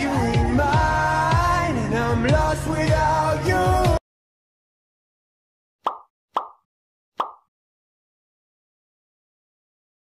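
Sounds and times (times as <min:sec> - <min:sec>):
pop sound effects: 0:05.8 - 0:07.5.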